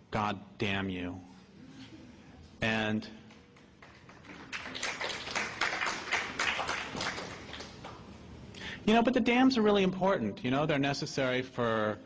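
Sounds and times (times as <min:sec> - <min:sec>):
audience applause: 0:03.8 - 0:08.0.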